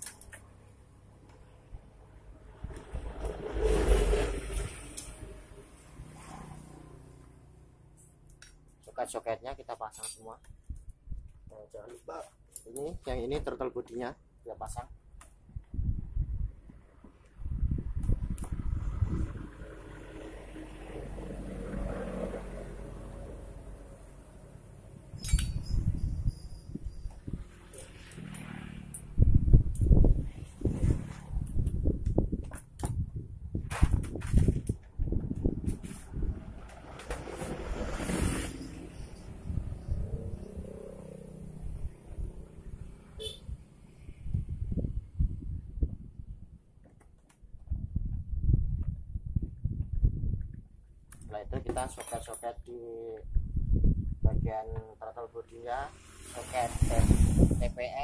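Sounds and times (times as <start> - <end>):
metal knocks and clinks: 25.2 - 27.1, 51.7 - 52.6.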